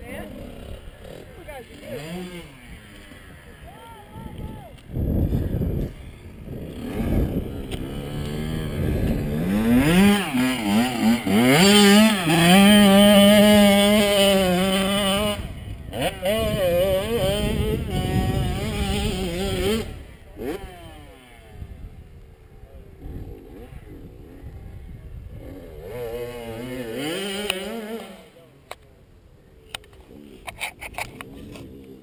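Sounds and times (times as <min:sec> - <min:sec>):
dirt bike engine revving: 0:00.0 - 0:28.7.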